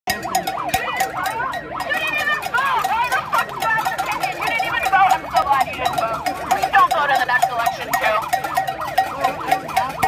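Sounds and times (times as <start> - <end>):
megaphone siren wailing: 0.1 - 10.0
people shouting: 0.1 - 10.0.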